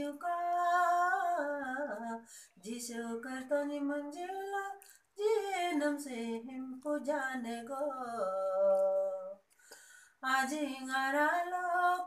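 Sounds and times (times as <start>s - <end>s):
woman singing unaccompanied: 0.0s - 9.5s, 10.2s - 12.0s.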